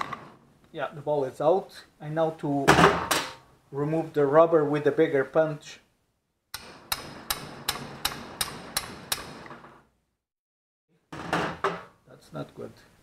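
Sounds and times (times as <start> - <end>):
hammer tapping steel punch: 6.6 - 9.6.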